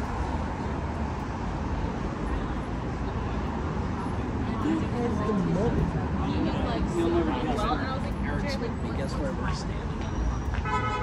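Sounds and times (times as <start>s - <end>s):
cars passing on street: 0.0s - 11.0s
people's voices: 1.7s - 10.7s.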